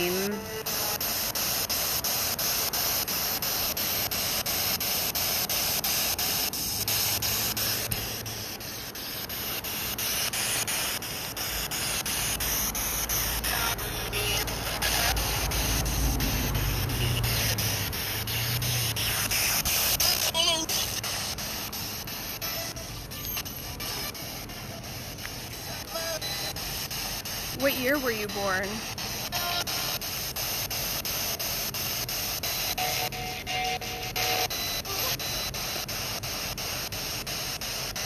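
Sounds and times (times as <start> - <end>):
steady broadband hiss: 0.0 - 15.8.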